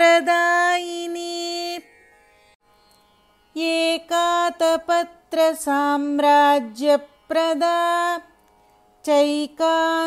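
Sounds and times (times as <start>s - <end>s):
woman chanting: 0.0s - 1.8s, 3.6s - 8.3s, 9.0s - 10.0s.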